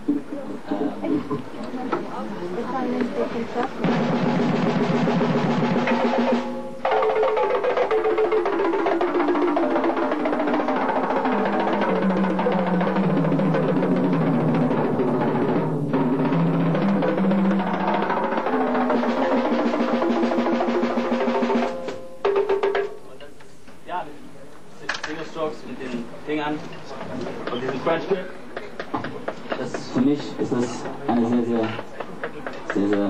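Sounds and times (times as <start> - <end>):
tom-tom drum roll: 3.8 - 23.0.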